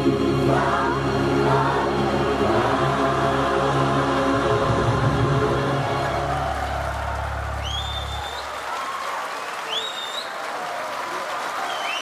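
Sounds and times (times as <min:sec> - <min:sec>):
audience applauding: 0:05.8 - 0:12.0
rising whistles from crowd: 0:06.5 - 0:12.0.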